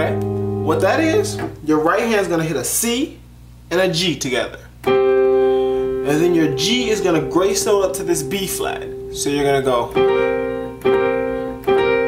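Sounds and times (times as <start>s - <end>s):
electronic piano chord: 0.0s - 1.6s, 4.8s - 12.0s.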